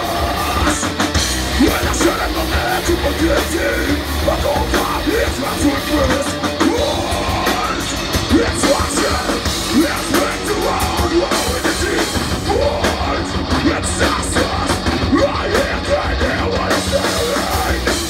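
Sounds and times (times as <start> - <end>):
bass guitar: 0.0 - 18.0
distorted electric guitar: 0.0 - 18.0
drum kit: 0.0 - 18.0.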